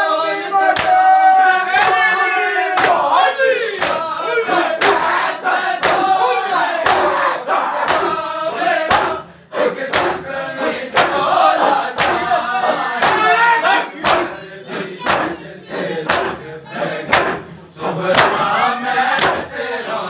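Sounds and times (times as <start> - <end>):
male voices chanting: 0.0 - 20.0
men slapping chests in unison: 0.6 - 19.7.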